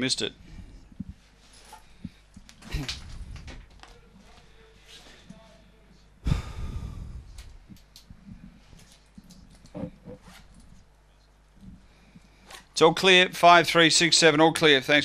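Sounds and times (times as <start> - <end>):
faint voice sounds: 3.8 - 6.5.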